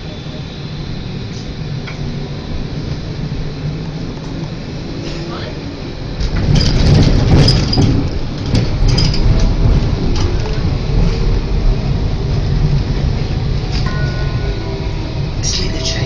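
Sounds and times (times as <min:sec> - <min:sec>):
tram interior hum: 0:00.0 - 0:16.0
tram wheels rumbling on rails: 0:00.0 - 0:16.0.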